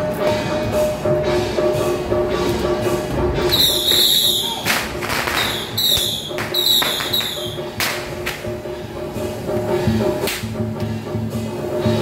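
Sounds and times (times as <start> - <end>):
high whistling tones: 3.5 - 7.7
firecracker bangs: 3.5 - 8.6.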